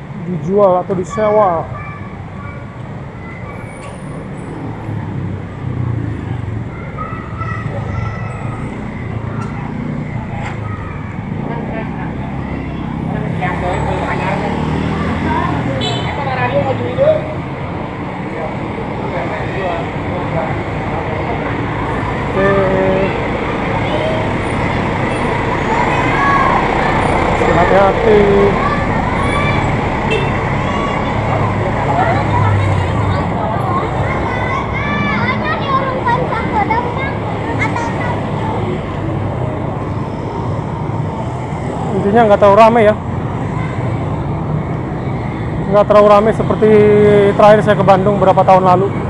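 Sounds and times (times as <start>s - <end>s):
traffic engine rumble: 0.0s - 49.0s
people talking: 30.6s - 38.8s.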